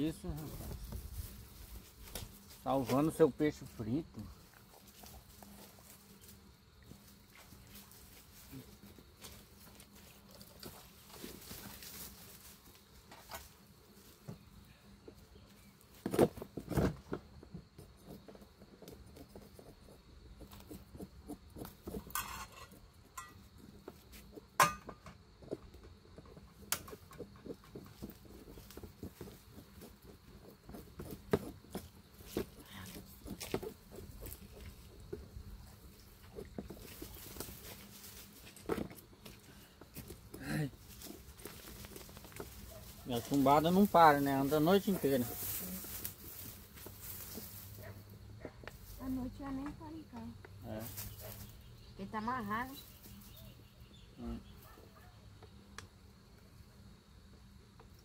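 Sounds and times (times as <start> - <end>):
camp cooking gear rattling: 20.9 - 23.5.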